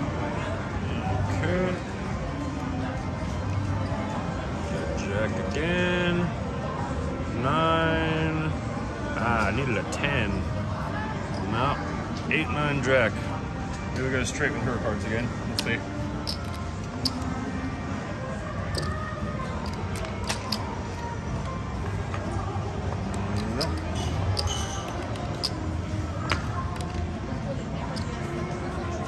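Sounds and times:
background music: 0.0s - 29.0s
indistinct voices: 14.0s - 29.0s
cards and chips clicking: 15.4s - 17.5s, 18.7s - 21.0s, 23.0s - 27.2s.

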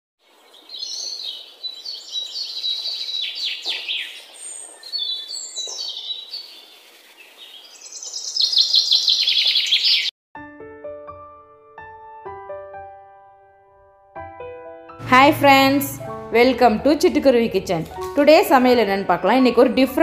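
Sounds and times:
songbird singing: 0.2s - 10.1s.

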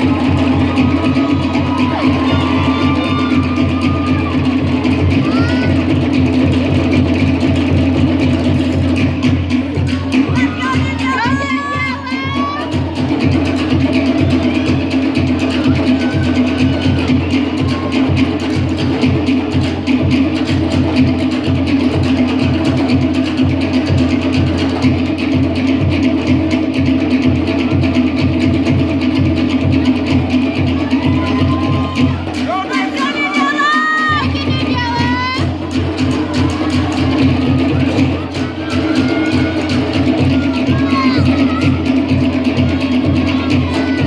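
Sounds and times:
high whoops and shouts: 0.0s - 5.9s, 10.3s - 13.0s, 30.6s - 35.5s
drum ensemble playing fast rhythm: 0.0s - 44.0s.

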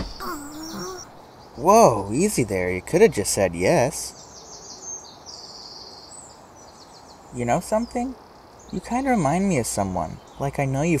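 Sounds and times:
faint bird chirps: 0.0s - 11.0s
low steady hiss: 0.0s - 11.0s.

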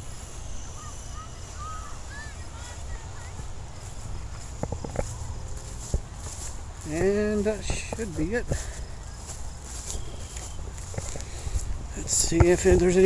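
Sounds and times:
wind rumbling on microphone: 1.9s - 13.0s.

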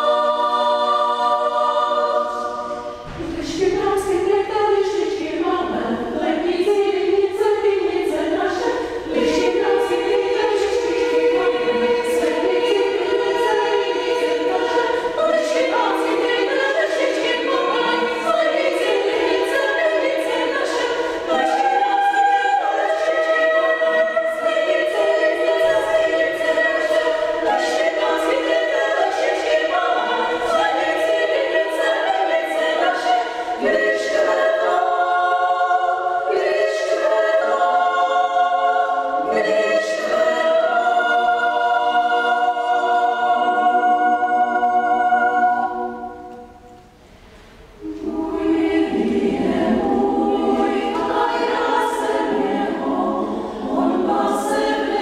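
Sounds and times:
women's choir singing a cappella: 0.0s - 55.0s.

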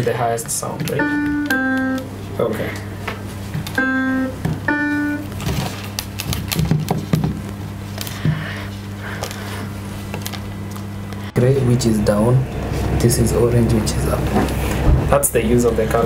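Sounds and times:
steady low hum: 0.0s - 16.0s
electronic piano notes: 0.8s - 3.0s, 3.6s - 5.7s.

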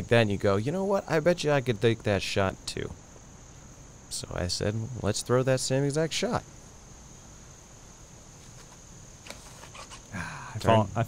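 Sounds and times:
high-pitched insect drone: 9.0s - 11.0s.

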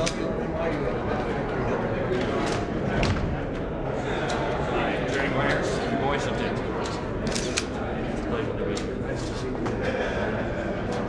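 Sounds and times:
murmur of indistinct talk: 0.0s - 11.0s.

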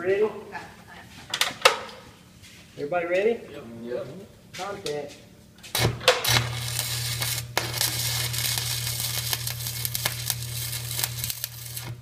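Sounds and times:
welding arc crackling: 5.7s - 12.0s
welding arc pops: 5.7s - 12.0s.

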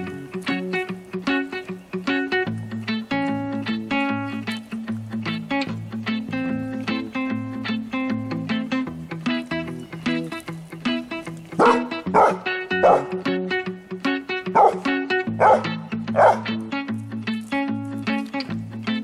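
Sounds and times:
plucked guitar music: 0.0s - 19.0s
dog barking: 11.6s - 13.2s, 14.5s - 16.6s.

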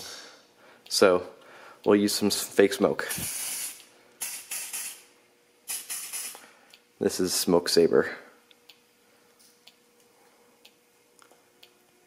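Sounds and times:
aerosol spray hissing: 3.1s - 5.0s, 5.7s - 6.4s.

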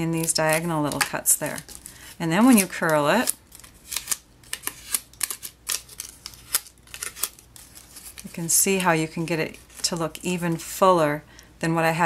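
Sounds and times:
paper crackles and clicks: 0.0s - 8.9s.

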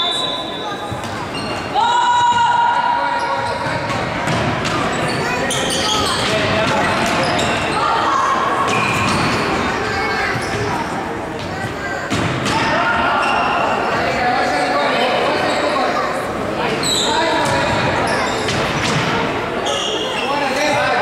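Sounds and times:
shoe squeaks: 0.0s - 2.2s, 3.1s - 3.9s, 4.7s - 10.9s, 16.8s - 18.9s, 19.6s - 21.0s
players shouting: 1.7s - 3.6s.

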